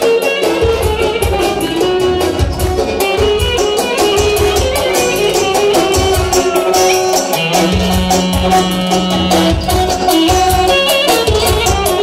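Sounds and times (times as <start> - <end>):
clarinet melody: 0.0 - 12.0
steady drum beat: 0.0 - 12.0.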